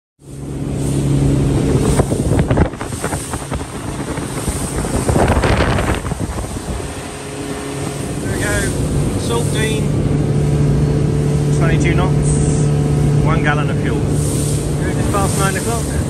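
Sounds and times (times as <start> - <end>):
outboard engines running: 0.2 - 16.0
water rushing past hull: 0.2 - 16.0
wind buffeting microphone: 0.3 - 16.0.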